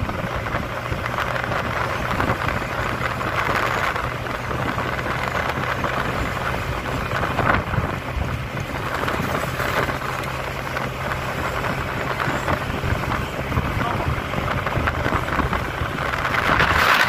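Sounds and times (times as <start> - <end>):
motorcycle engine running: 0.0 - 17.0
wind rushing over microphone: 0.0 - 17.0.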